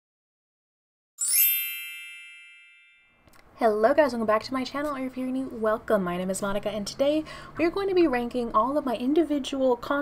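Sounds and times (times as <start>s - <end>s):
bright chime ding: 1.2s - 3.2s.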